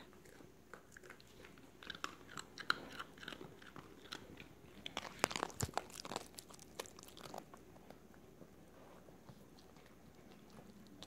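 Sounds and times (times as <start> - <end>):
dog crunching a treat: 0.1 - 8.1.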